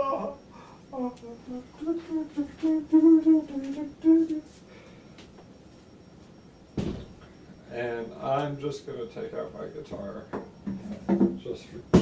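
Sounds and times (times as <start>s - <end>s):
man humming a tune: 0.0s - 4.6s.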